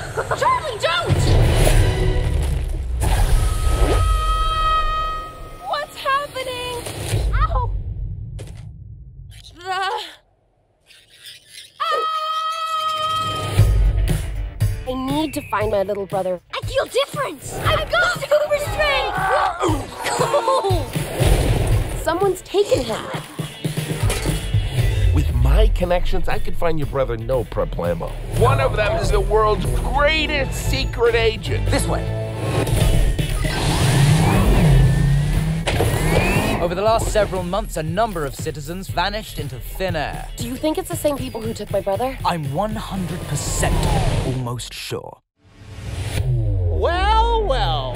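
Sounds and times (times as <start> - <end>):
woman shouting: 0.3 - 1.2, 16.6 - 21.0
wavering cry: 10.9 - 13.5
background music: 13.0 - 44.3.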